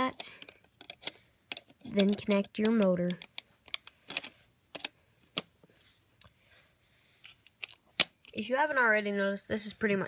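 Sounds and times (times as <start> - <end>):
plastic parts snapping together: 0.2 - 5.5, 7.4 - 8.3.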